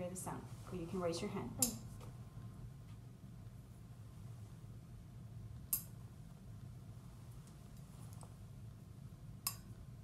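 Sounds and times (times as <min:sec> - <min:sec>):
low room hum: 0:00.0 - 0:10.0
tuning fork metallic click: 0:09.4 - 0:09.7.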